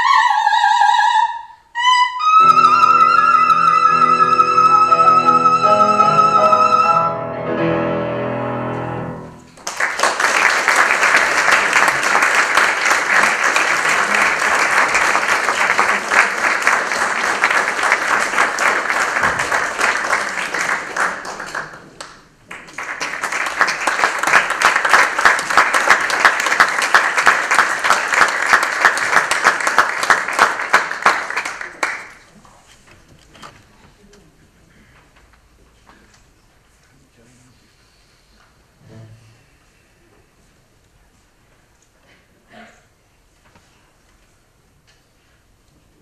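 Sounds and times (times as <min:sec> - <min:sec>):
singer with piano: 0:00.0 - 0:09.3
audience applauding: 0:09.4 - 0:32.3.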